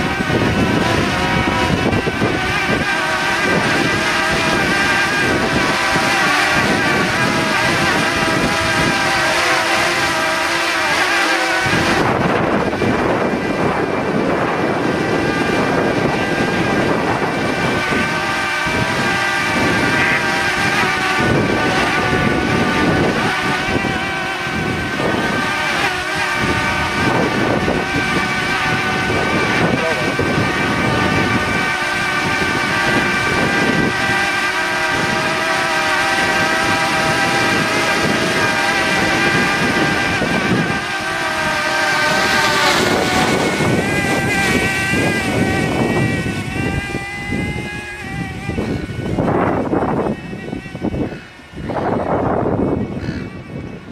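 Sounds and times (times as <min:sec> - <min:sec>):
drone propellers buzzing: 0:00.0 - 0:53.9
wind rumbling on microphone: 0:00.0 - 0:53.9.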